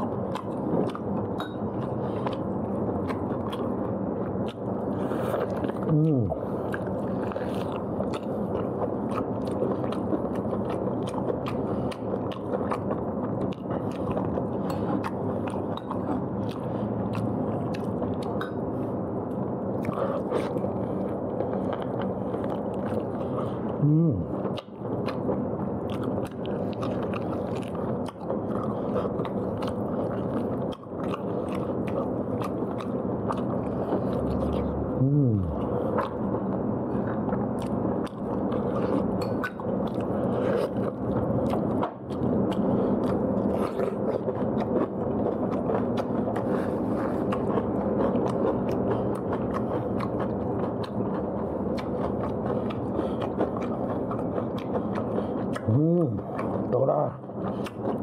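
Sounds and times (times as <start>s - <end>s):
person chewing food: 0.0s - 58.0s
person humming: 5.9s - 6.4s, 23.8s - 24.3s, 35.0s - 35.6s.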